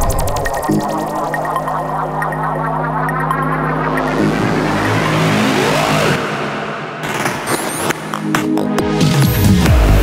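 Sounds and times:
psytrance music: 0:00.0 - 0:10.0.

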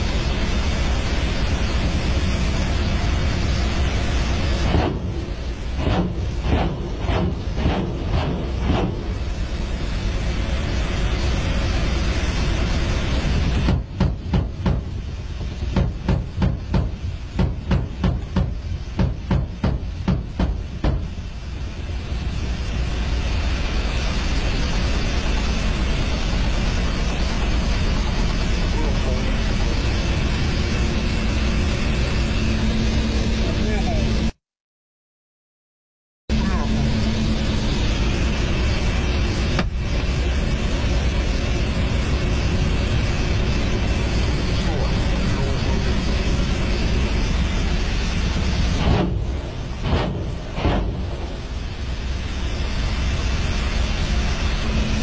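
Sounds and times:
helicopter engines and rotors drone: 0:00.0 - 0:34.4, 0:36.3 - 0:55.0.

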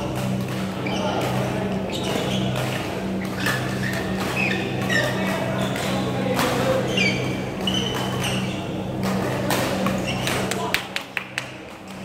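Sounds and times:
court shoes squeaking: 0:00.0 - 0:10.8
racket striking shuttlecock: 0:00.1 - 0:10.7.

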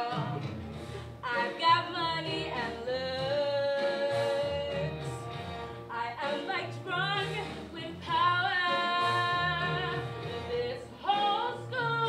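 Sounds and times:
backing track with pulsing bass: 0:00.0 - 0:05.9.

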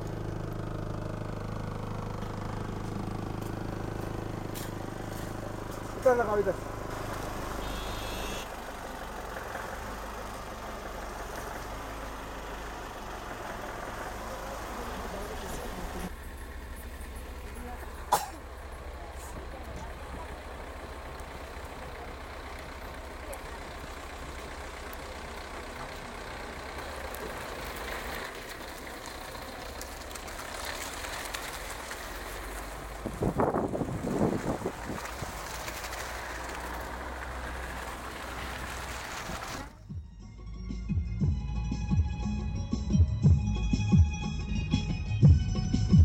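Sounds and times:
vehicle engine rumbling: 0:00.0 - 0:46.0.

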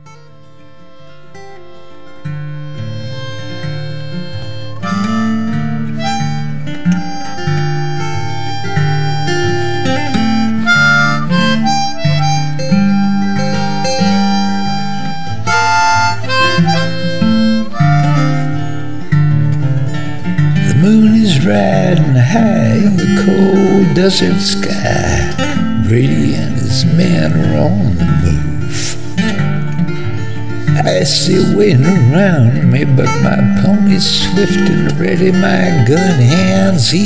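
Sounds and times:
acoustic guitar: 0:00.0 - 0:37.0
harmonica melody: 0:00.0 - 0:37.0.

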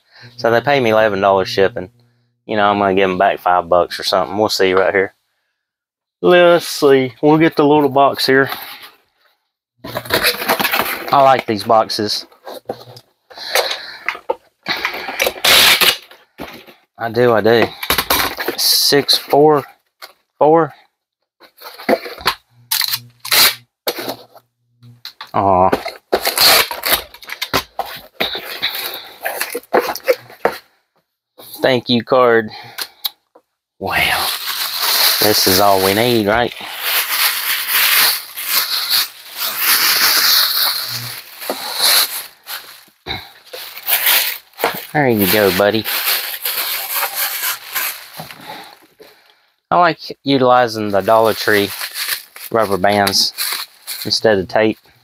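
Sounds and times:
cardboard box rustling and rasping: 0:09.9 - 0:11.2
plastic bag crinkling: 0:09.9 - 0:16.5, 0:33.9 - 0:49.0, 0:50.8 - 0:54.3.

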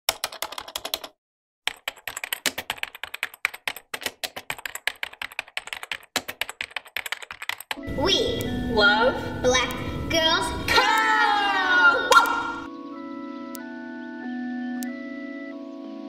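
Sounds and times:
computer keyboard typing: 0:00.1 - 0:07.8
music: 0:07.8 - 0:16.0.

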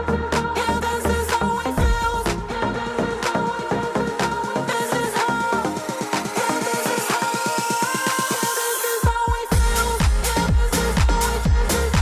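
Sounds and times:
electronic dance music: 0:00.0 - 0:12.0.

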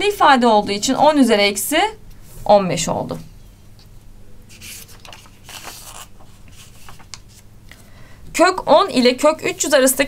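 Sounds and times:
paper rustling: 0:04.5 - 0:07.5.

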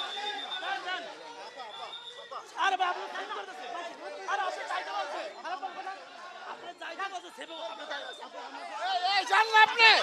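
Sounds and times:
people arguing: 0:00.0 - 0:10.0.

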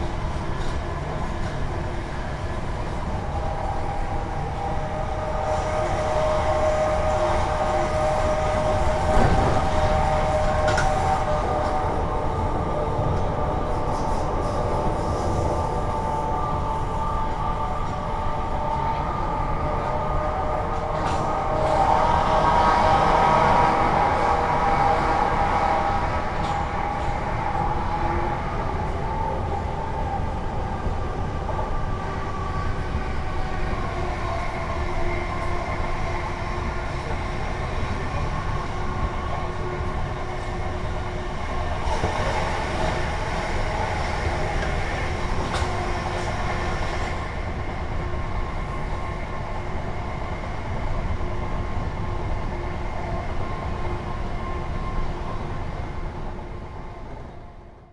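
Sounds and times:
train wheels rumbling on track: 0:00.0 - 0:57.3.

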